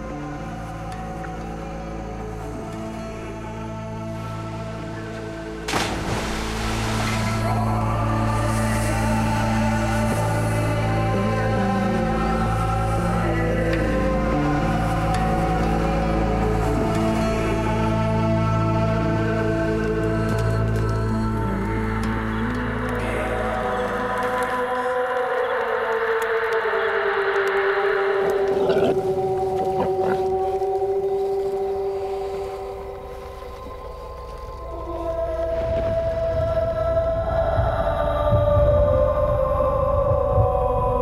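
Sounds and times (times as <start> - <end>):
ambient score with gliding tones: 0.0 - 41.0.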